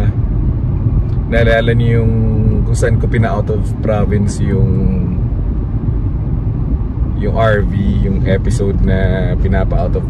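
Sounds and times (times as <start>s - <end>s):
car engine inside cabin: 0.0s - 10.0s
road noise: 0.0s - 10.0s.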